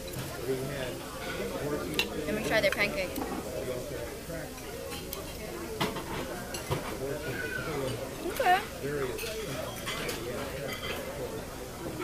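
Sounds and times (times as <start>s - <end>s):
restaurant chatter: 0.0s - 12.0s
cutlery clinking on plates: 1.2s - 3.5s, 4.5s - 8.4s, 9.0s - 12.0s.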